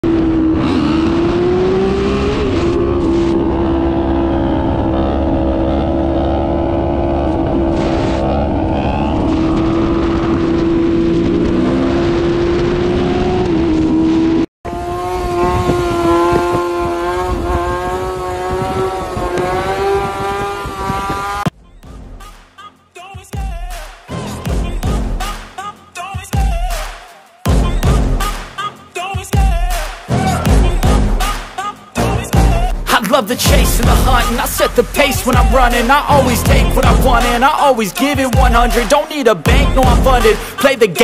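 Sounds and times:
motorcycle engine at high revs: 0.0s - 21.5s.

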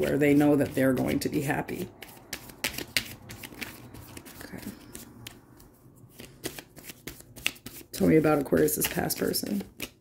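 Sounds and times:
cards being shuffled: 2.0s - 10.0s.

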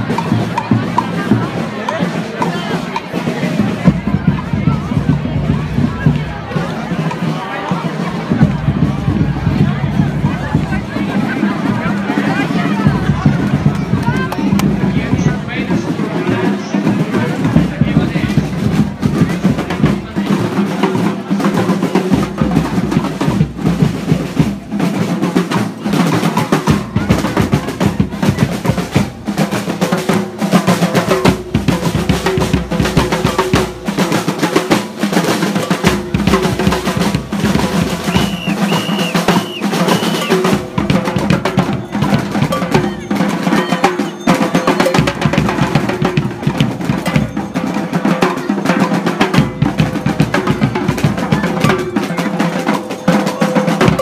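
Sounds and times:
street drums playing fast beat: 0.0s - 54.0s.

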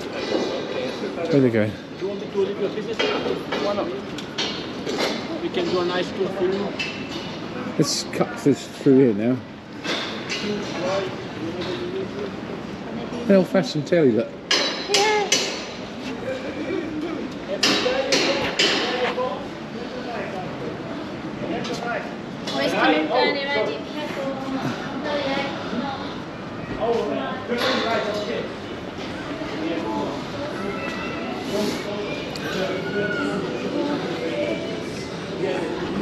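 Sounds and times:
people talking indistinctly: 0.0s - 36.0s.

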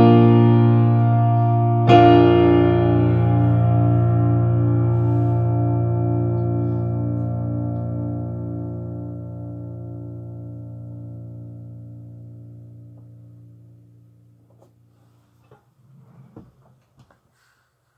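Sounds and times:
keyboard chord ringing: 0.0s - 13.8s
soft handling knocks and rustles: 14.5s - 17.2s.

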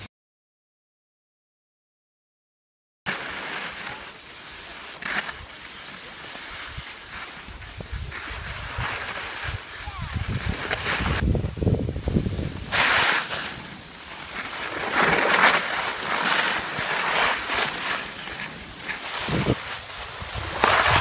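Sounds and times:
skis scraping packed snow: 3.1s - 21.0s
wind buffeting microphone: 7.5s - 12.8s, 19.1s - 21.0s.

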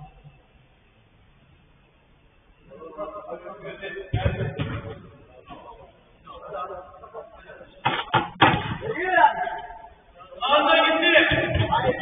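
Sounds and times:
men's voices: 8.8s - 12.0s.

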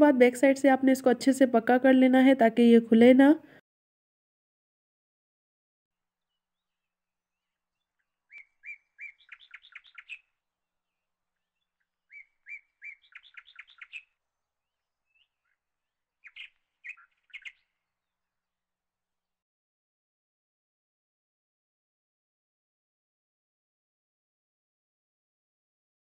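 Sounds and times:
bird singing: 6.2s - 18.4s.

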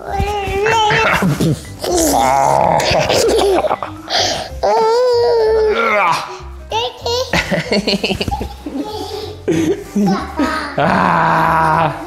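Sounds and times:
background music: 0.0s - 12.0s
toddler laughing: 0.6s - 4.0s, 6.8s - 11.0s.

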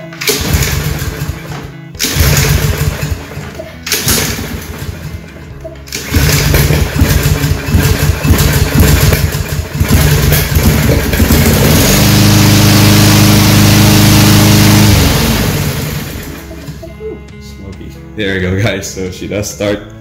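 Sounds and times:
lawn mower engine pull-started: 0.0s - 16.9s
lawn mower engine running: 0.0s - 17.0s.

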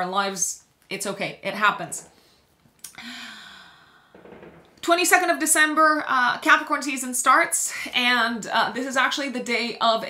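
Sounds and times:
woman speaking: 0.0s - 2.1s, 4.8s - 10.0s
breath in: 2.2s - 4.3s
woman sighing: 2.9s - 4.0s.

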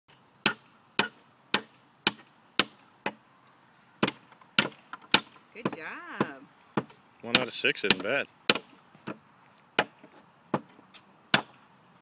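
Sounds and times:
hammer on wooden boards: 0.4s - 3.2s, 4.0s - 9.2s.

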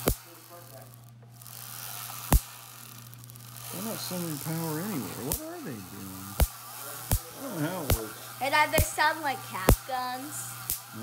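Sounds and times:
electric spark snap: 0.0s - 11.0s
steady low hum: 0.0s - 11.0s.

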